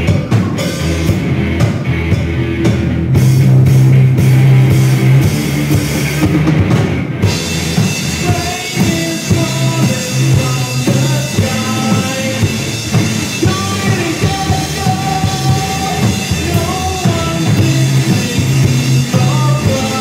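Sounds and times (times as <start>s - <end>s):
bass guitar: 0.0s - 20.0s
electric guitar: 0.0s - 20.0s.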